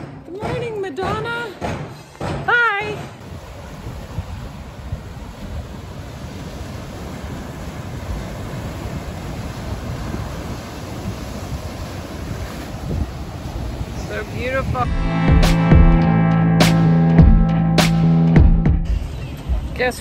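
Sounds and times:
wind buffeting microphone: 2.8s - 16.0s
surf breaking over rocks: 3.2s - 14.9s.

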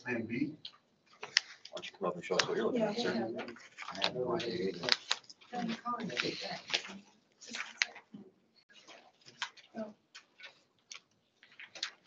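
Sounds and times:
papers being handled: 0.7s - 12.0s.

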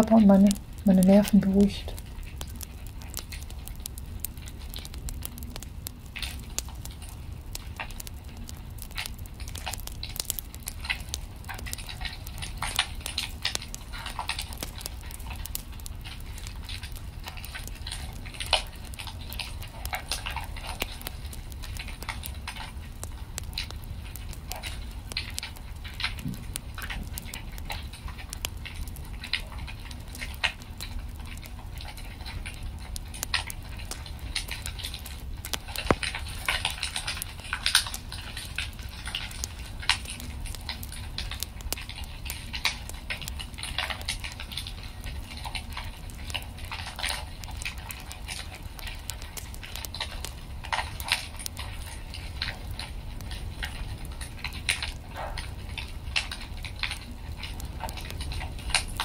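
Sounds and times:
low steady rumble: 0.0s - 59.0s
wood fire crackling: 0.0s - 59.0s.

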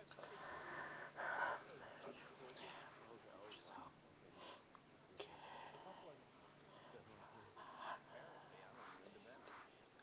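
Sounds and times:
soft breathing: 0.0s - 10.0s.

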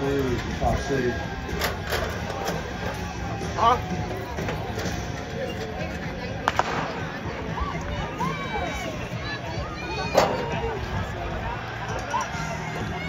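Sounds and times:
outdoor background noise: 0.0s - 13.0s
starting pistol shot: 6.4s - 7.2s.

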